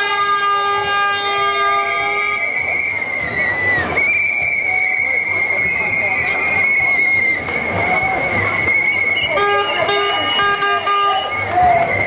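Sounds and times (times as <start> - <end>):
shrill whistle blast: 1.5 - 12.0.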